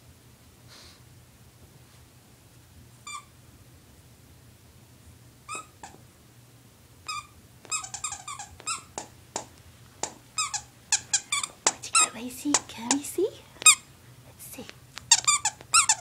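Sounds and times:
dog toy squeaking: 0:03.0 - 0:03.3, 0:05.5 - 0:06.0, 0:07.1 - 0:13.9, 0:15.1 - 0:16.0
dog chewing toy: 0:07.1 - 0:13.9, 0:15.0 - 0:16.0.

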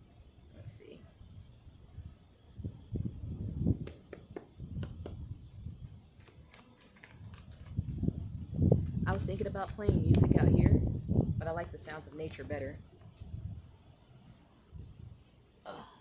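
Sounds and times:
sharp card clicks: 0:06.2 - 0:07.8
cards being shuffled: 0:06.2 - 0:10.3.

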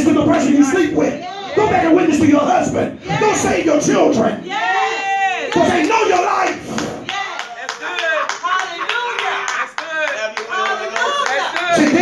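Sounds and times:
congregation clapping: 0:05.5 - 0:12.0.

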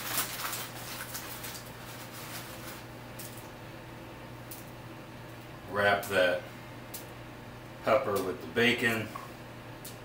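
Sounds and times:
bacon pulled from paper wrapping: 0:00.0 - 0:03.5.

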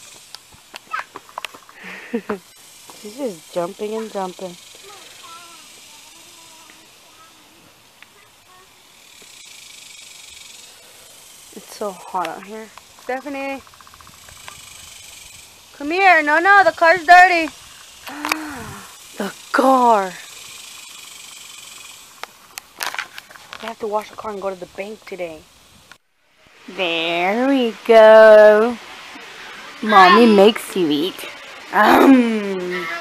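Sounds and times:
high buzzing hiss: 0:00.0 - 0:33.0
sharp breath or sniff: 0:17.6 - 0:19.0.

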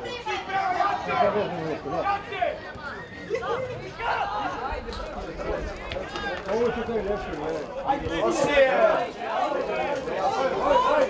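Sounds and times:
men talking and calling out: 0:00.0 - 0:11.0.

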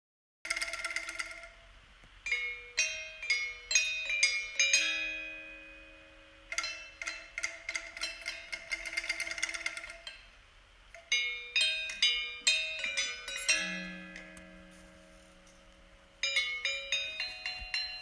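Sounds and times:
gamelan music: 0:02.2 - 0:10.4, 0:11.0 - 0:18.0
low ringing tone: 0:02.3 - 0:07.4.

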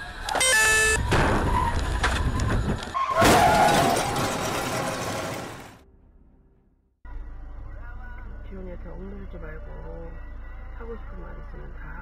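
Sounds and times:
car crash grinding and scraping: 0:01.0 - 0:05.8.

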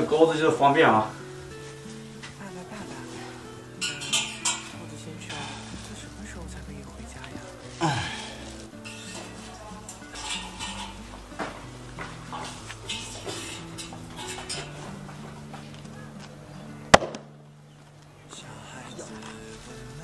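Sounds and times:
background music: 0:00.0 - 0:20.0
metal meat hooks clinking on rails: 0:03.8 - 0:06.0, 0:08.8 - 0:14.9
sharp loud knock: 0:17.0 - 0:17.2.

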